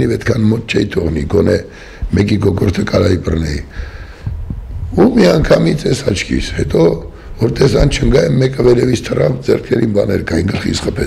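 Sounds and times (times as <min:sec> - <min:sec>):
man speaking: 0:00.0 - 0:03.8, 0:04.9 - 0:11.0.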